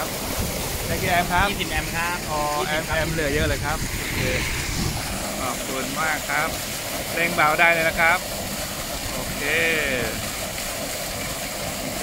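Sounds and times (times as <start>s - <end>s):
water jet splashing into pond: 0.0s - 12.0s.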